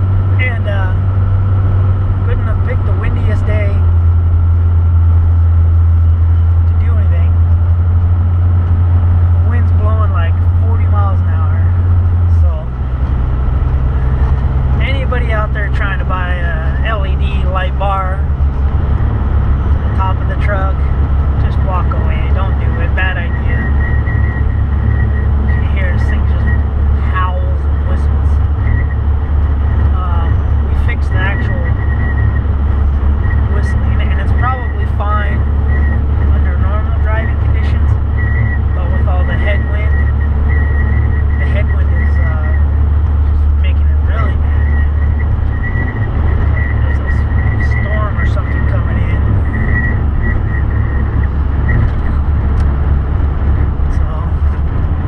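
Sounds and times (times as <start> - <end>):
engine and road drone: 0.0 - 55.0
thin high whine: 0.0 - 55.0.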